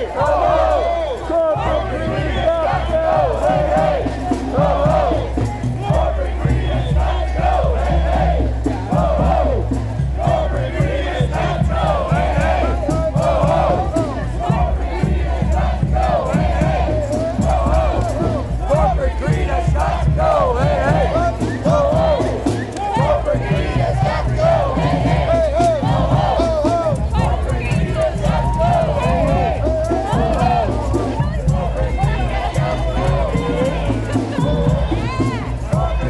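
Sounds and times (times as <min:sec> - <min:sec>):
crowd shouting: 0:00.0 - 0:36.0.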